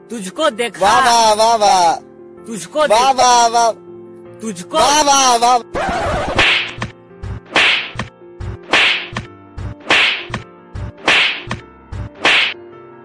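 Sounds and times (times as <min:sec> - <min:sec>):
whip cracks: 0:06.4 - 0:06.9, 0:07.5 - 0:08.1, 0:08.7 - 0:10.4, 0:11.0 - 0:11.6, 0:12.2 - 0:12.6.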